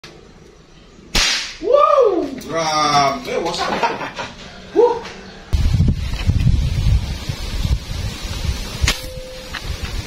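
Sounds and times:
airgun shot crack: 1.1 - 1.6.

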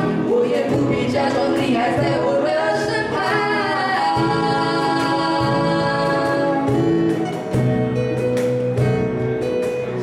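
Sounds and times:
woman singing: 0.0 - 7.3
acoustic guitar: 0.0 - 10.0.

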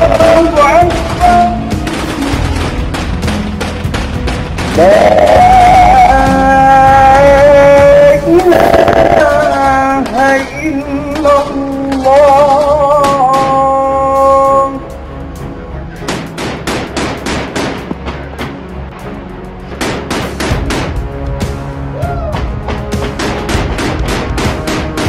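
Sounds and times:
rapid gunshots: 0.0 - 6.4, 8.6 - 13.8, 16.0 - 18.4, 19.7 - 21.1, 22.8 - 25.0.

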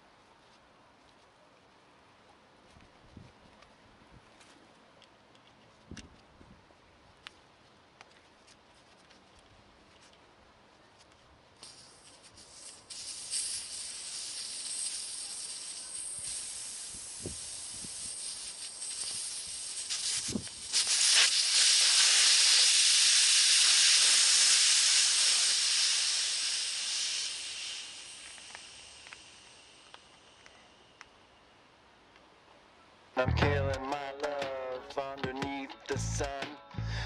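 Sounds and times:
air hissing out of tyre valve: 11.6 - 30.8.

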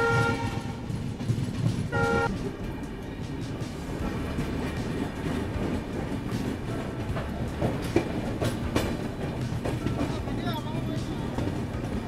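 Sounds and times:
train horn blast: 0.0 - 0.9, 1.9 - 2.4
train rumbling on track: 0.0 - 12.0.

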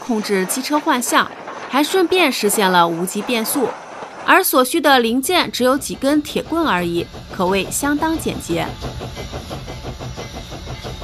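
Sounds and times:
steady steam hiss: 0.0 - 11.0
steam locomotive chuffing: 0.0 - 11.0.

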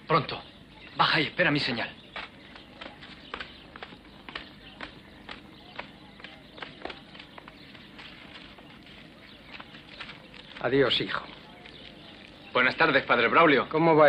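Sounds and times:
light footsteps: 2.0 - 13.2.

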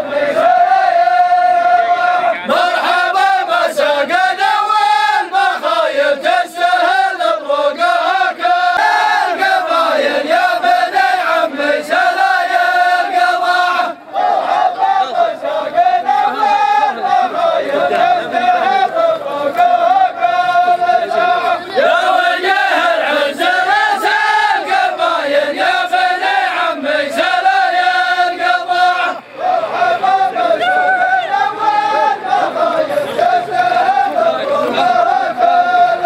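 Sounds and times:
men chanting in unison: 0.0 - 36.0.

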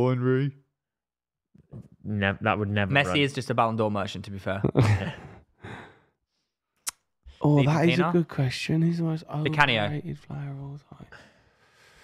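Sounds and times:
man laughing: 4.6 - 5.4
breathy exhale: 5.6 - 6.2, 11.1 - 12.0.

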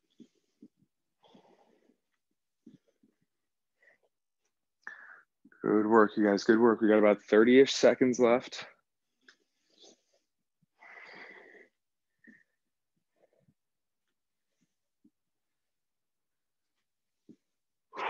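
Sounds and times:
man breathing heavily through nose: 4.8 - 5.3, 10.8 - 11.8.

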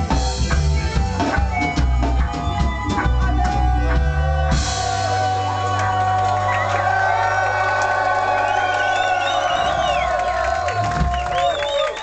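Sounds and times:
crowd cheering and whooping: 1.1 - 12.0.

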